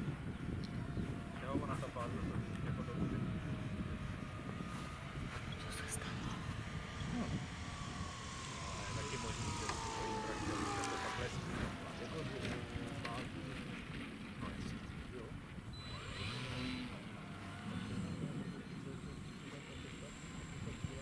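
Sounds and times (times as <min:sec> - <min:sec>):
model aircraft electric motor whine: 0:00.0 - 0:21.0
wind rumble on microphone: 0:00.0 - 0:21.0.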